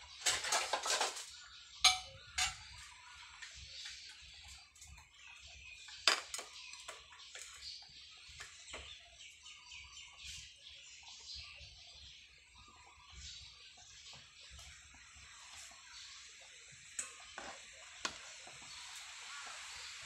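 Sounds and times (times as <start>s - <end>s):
faint chirping: 0.0s - 20.0s
crockery and utensils clinking: 0.2s - 2.9s.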